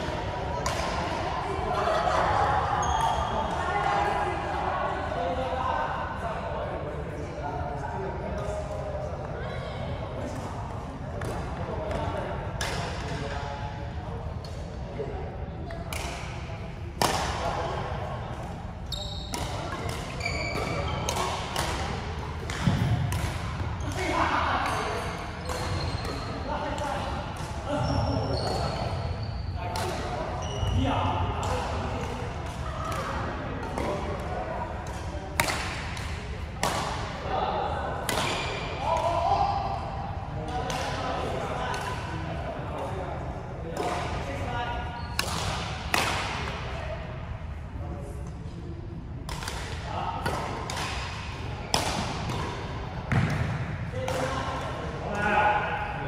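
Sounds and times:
rackets striking shuttlecock: 0:00.6 - 0:01.1, 0:17.0 - 0:17.4, 0:19.3 - 0:27.6, 0:31.4 - 0:37.2, 0:49.2 - 0:54.7
shoes squeaking on floor: 0:18.9 - 0:19.3, 0:20.1 - 0:21.1, 0:25.5 - 0:26.4, 0:27.7 - 0:29.6.

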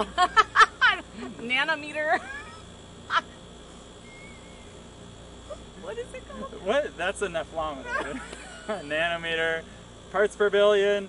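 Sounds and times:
person laughing high-pitched: 0:02.1 - 0:03.3.

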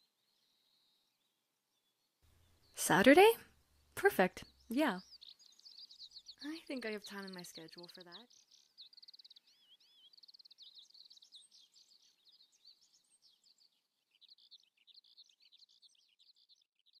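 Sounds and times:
small birds chirping and trilling: 0:00.0 - 0:17.0.

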